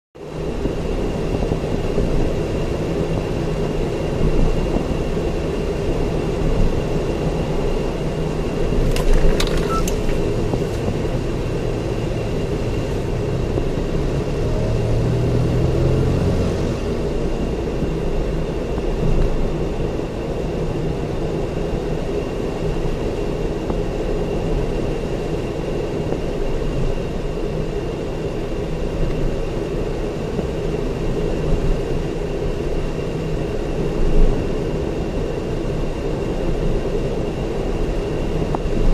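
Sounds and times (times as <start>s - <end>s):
tyre and engine rumble: 0.4s - 19.8s
faint steady high tone: 9.4s - 10.1s.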